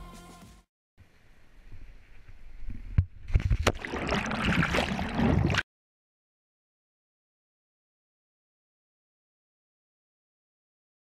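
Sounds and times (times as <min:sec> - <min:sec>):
water rushing and splashing: 0:03.5 - 0:05.6.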